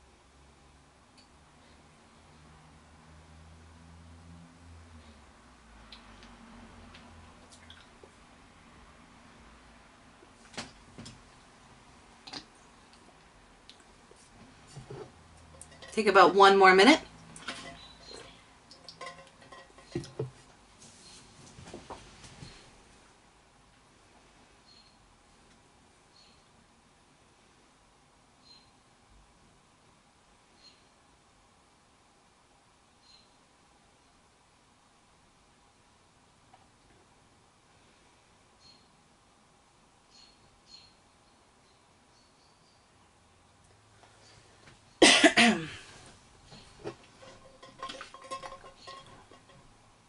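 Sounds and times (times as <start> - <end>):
person coughing: 45.0 - 45.9.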